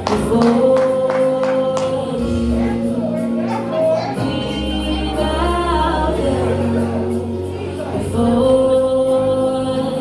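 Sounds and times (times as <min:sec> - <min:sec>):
gospel singing: 0:00.0 - 0:10.0.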